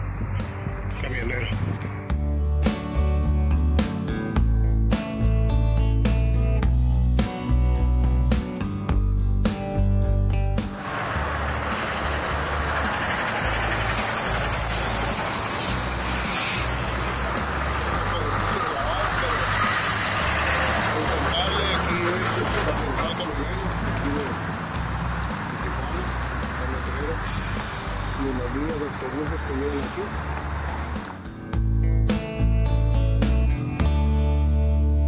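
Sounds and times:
truck passing: 0:00.0 - 0:07.2, 0:08.0 - 0:33.7
road traffic noise: 0:00.0 - 0:34.0
short high hiss: 0:16.0 - 0:17.9
music with heavy bass beat: 0:24.8 - 0:35.0.

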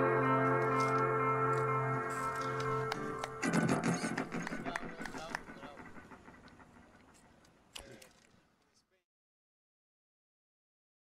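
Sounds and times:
music: 0:00.0 - 0:06.2
voices: 0:02.3 - 0:09.0.

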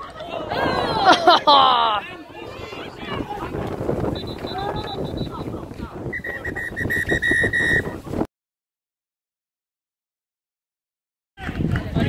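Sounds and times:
players shouting: 0:00.0 - 0:07.8
referee whistle blasts: 0:04.2 - 0:05.4, 0:06.1 - 0:07.9.

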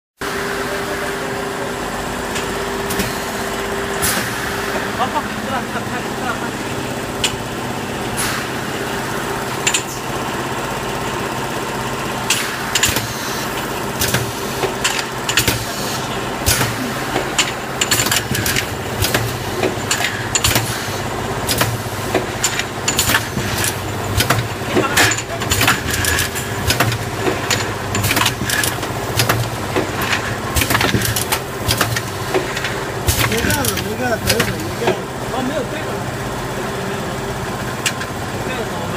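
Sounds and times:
machine motor hum: 0:00.2 - 0:38.9.

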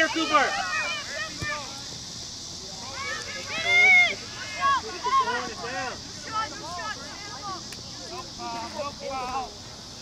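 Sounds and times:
distant voices shouting: 0:00.0 - 0:09.9
steady high hiss: 0:00.0 - 0:10.0.

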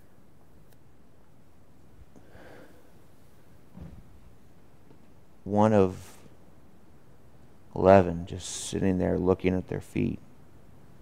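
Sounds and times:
faint exhale: 0:02.2 - 0:03.0
soft thump on wooden pew: 0:03.7 - 0:04.1.

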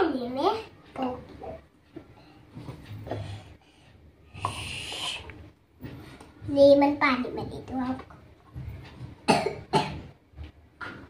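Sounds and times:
person coughing: 0:09.3 - 0:10.0.

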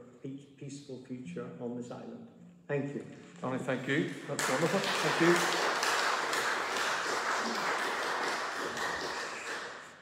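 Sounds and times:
congregation applauding: 0:04.1 - 0:10.0.

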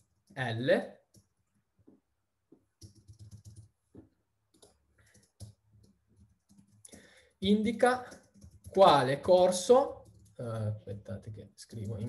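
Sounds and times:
typing on computer keyboard: 0:02.8 - 0:03.8, 0:04.5 - 0:07.1, 0:07.7 - 0:10.6, 0:11.7 - 0:12.0.

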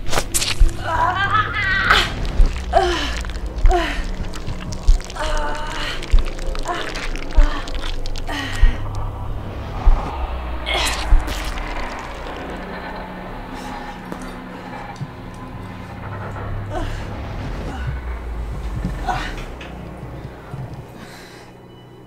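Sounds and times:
low droning music: 0:00.0 - 0:22.0
deep booms: 0:00.6 - 0:21.1.

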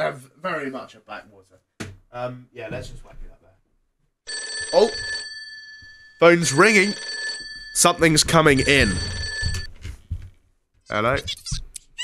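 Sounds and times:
telephone bell ringing: 0:04.3 - 0:09.7.

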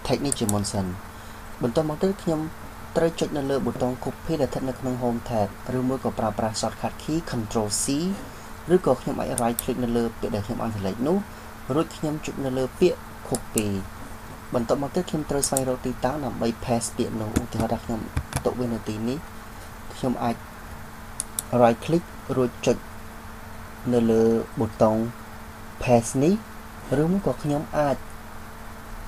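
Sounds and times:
steady low hum with hiss: 0:00.0 - 0:29.0
man speaking: 0:01.6 - 0:13.9, 0:14.5 - 0:19.2, 0:19.9 - 0:20.4, 0:25.8 - 0:28.0.

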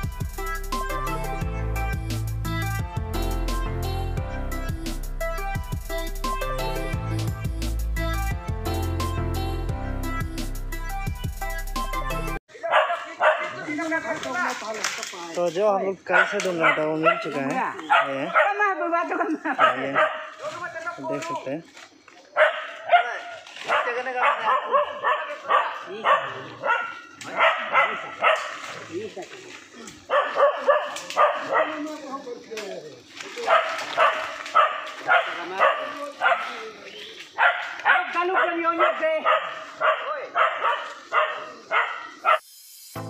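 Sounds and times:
people's voices: 0:12.5 - 0:41.8
dog barking: 0:12.6 - 0:13.8, 0:16.1 - 0:18.8, 0:19.4 - 0:20.4, 0:22.4 - 0:28.8, 0:30.0 - 0:31.9, 0:33.4 - 0:36.7, 0:37.4 - 0:42.4.

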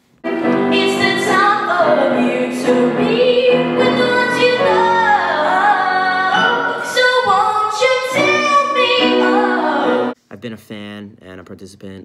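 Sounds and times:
boy singing into microphone: 0:00.7 - 0:10.2.

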